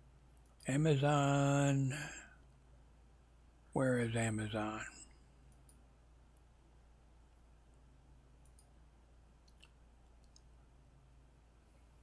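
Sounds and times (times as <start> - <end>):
low steady hum: 0.0 - 12.0
computer mouse clicks: 5.5 - 6.5, 8.4 - 8.8, 9.4 - 10.5.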